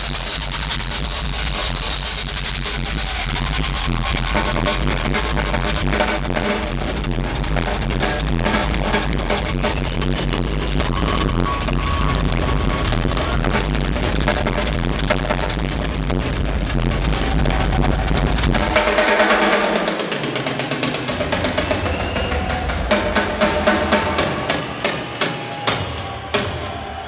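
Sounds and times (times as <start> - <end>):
drum kit solo: 0.0 - 27.0
steady bass drum: 0.0 - 27.0.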